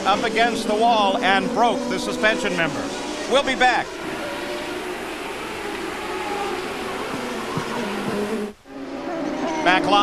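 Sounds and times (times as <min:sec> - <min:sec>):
race car engine drone: 0:00.0 - 0:10.0.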